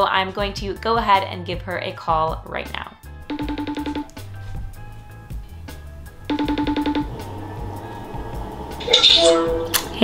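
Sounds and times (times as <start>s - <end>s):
background music with steady beat: 0.0s - 10.0s
call connect tones: 3.3s - 4.3s, 6.3s - 7.3s.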